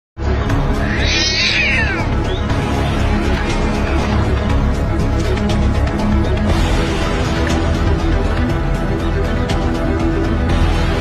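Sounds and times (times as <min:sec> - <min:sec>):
cat crying: 0:00.6 - 0:02.3.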